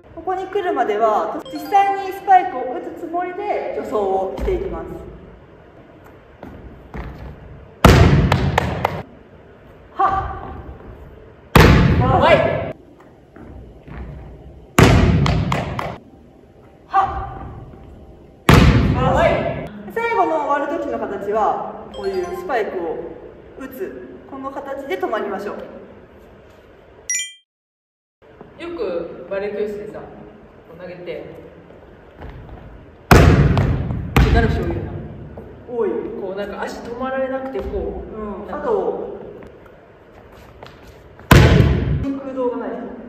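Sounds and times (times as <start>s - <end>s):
volleyball bouncing on gym floor: 7.8s - 9.0s, 14.8s - 16.0s, 18.5s - 19.0s, 33.1s - 34.7s, 41.3s - 42.0s.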